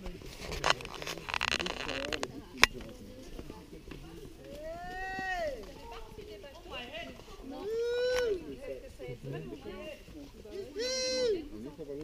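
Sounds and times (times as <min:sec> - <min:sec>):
person's drawn-out call: 0:10.7 - 0:11.4.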